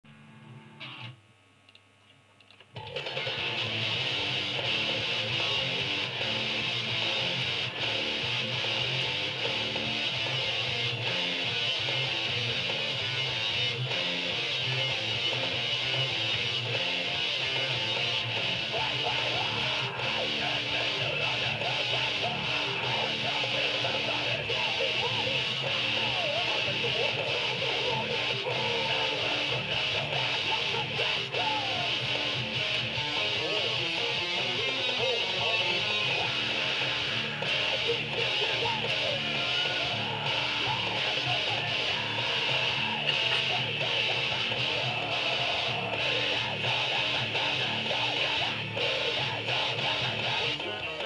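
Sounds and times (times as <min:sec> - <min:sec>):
electric guitar playing riffs: 0:00.1 - 0:01.2, 0:02.8 - 0:51.0.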